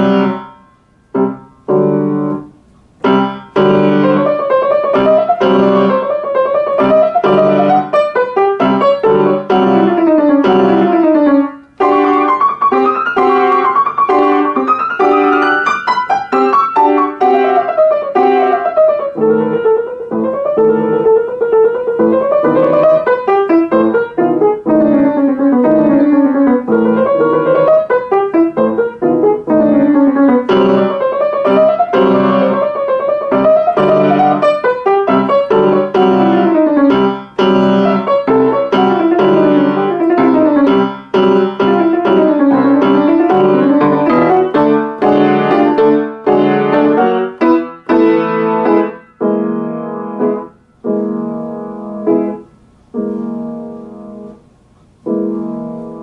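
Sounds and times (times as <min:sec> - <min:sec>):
grand piano playing: 0:00.0 - 0:56.0.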